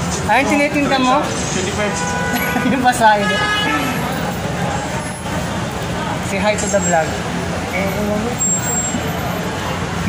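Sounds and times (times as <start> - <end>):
crowd chatter: 0.0 - 10.0
road traffic hum: 0.0 - 10.0.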